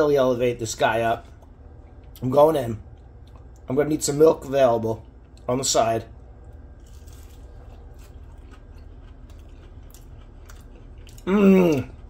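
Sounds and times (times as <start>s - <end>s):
low steady hum: 0.0s - 12.0s
faint crunches of chewing: 6.5s - 12.0s.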